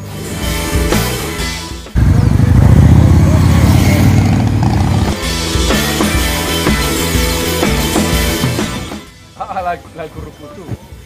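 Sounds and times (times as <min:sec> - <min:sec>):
music: 0:00.0 - 0:11.0
motorcycle engine passing by: 0:02.0 - 0:05.4.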